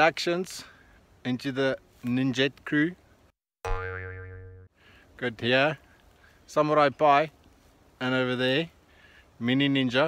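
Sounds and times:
comedy pitched tone effect: 3.7s - 4.7s.

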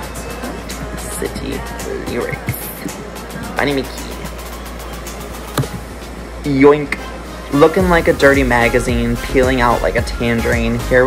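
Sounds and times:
room noise hum and hiss: 0.0s - 11.0s.

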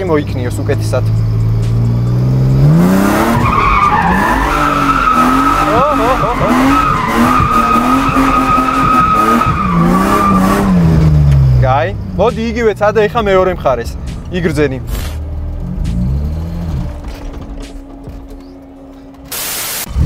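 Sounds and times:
car engine revving high: 0.6s - 12.2s
tyres squealing: 3.0s - 10.8s.

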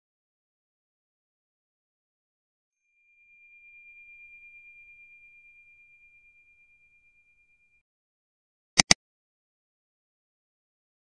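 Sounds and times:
high ringing chime tone: 2.8s - 7.8s.

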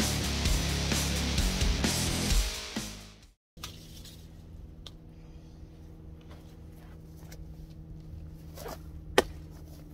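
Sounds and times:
steady low hum: 3.6s - 9.9s.

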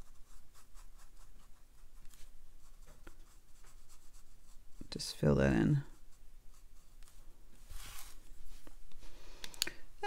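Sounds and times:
brush strokes on paper: 0.0s - 9.2s.

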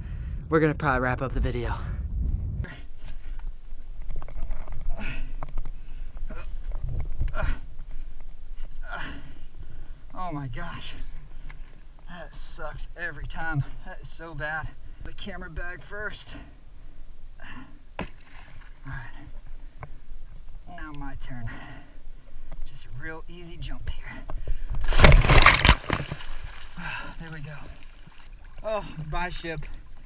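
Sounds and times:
low rumble: 0.0s - 4.9s
bag splashing into water: 24.8s - 26.8s.

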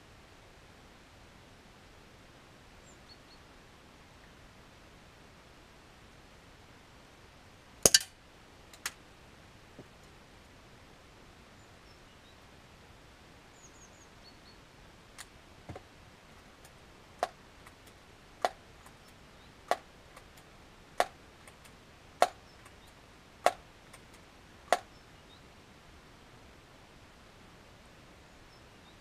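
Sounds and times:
faint clicks: 8.7s - 9.0s, 16.6s - 24.9s.

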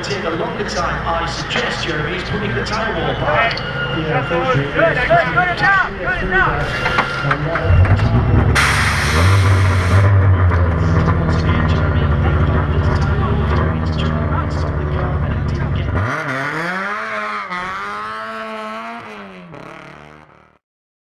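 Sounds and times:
race car engine: 0.0s - 20.6s.

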